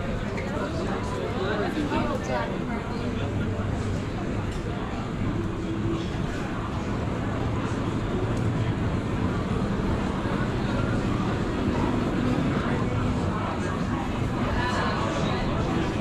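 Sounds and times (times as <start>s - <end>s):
low street hum: 0.0s - 16.0s
murmur of voices: 0.0s - 16.0s.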